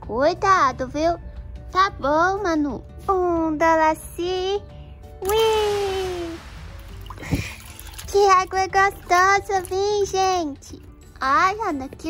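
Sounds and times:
water sloshing and splashing: 0:05.2 - 0:10.9.

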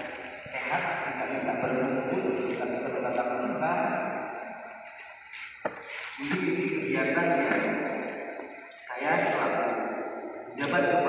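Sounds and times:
man speaking over loudspeakers: 0:00.0 - 0:04.8, 0:06.1 - 0:11.0.

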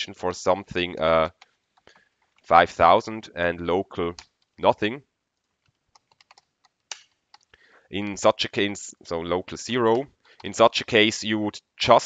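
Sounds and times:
typing on computer keyboard: 0:05.4 - 0:07.5.

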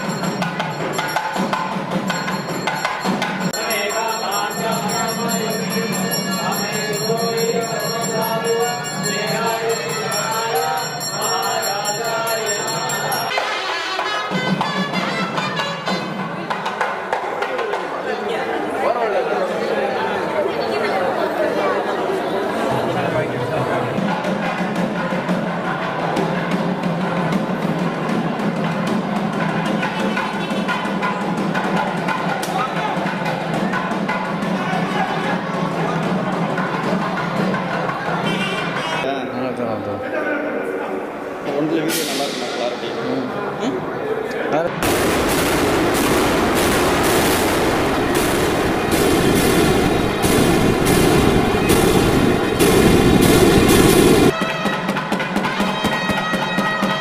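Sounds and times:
rapid drum strikes: 0:00.0 - 0:11.3, 0:24.0 - 0:38.2, 0:44.8 - 0:57.0
steady ringing tone: 0:00.0 - 0:13.4.

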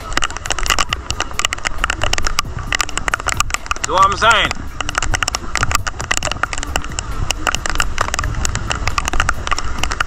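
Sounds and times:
rain falling: 0:00.0 - 0:10.0.

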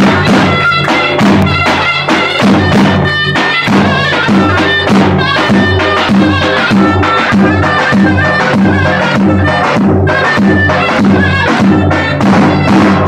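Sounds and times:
reedy shawm melody: 0:00.0 - 0:13.0.

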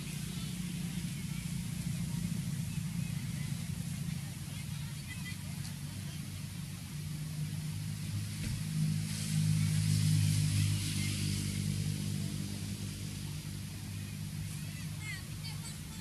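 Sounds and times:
vehicle engine running: 0:00.0 - 0:16.0.

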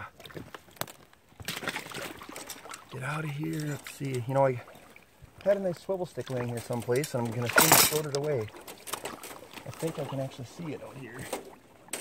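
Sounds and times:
shallow water splashing: 0:00.0 - 0:12.0
water dripping: 0:00.2 - 0:10.5.

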